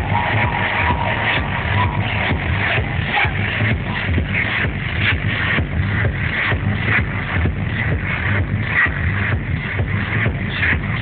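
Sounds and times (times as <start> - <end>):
loud techno music: 0.0 - 11.0.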